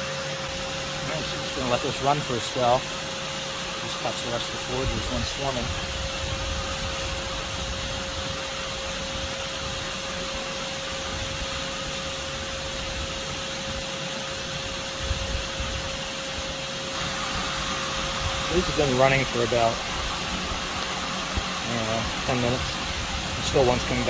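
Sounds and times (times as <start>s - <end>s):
vacuum cleaner whining: 0.0s - 24.0s.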